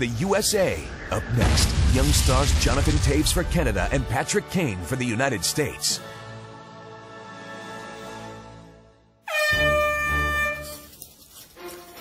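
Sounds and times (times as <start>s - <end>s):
background music: 3.0s - 12.0s
air horn blast: 9.3s - 10.9s.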